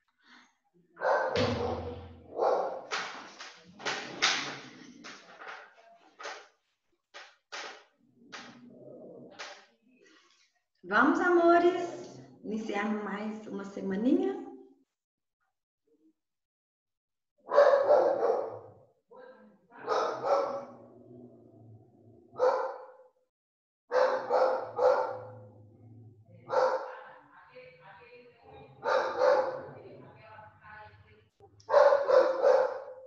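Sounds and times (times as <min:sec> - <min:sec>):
dog barking: 0:01.0 - 0:02.9, 0:17.4 - 0:18.8, 0:19.8 - 0:20.9, 0:22.3 - 0:23.1, 0:23.9 - 0:25.6, 0:26.4 - 0:27.0, 0:28.7 - 0:29.8, 0:31.6 - 0:33.0.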